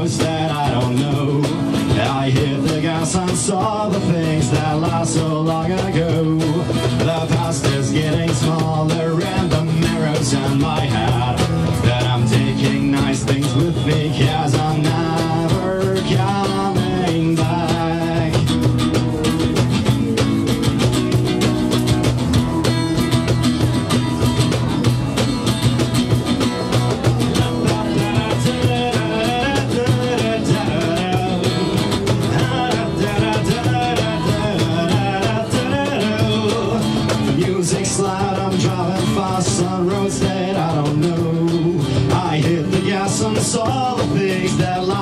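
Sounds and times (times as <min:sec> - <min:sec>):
acoustic guitar strumming: 0:00.0 - 0:45.0
cajon beat: 0:00.0 - 0:45.0.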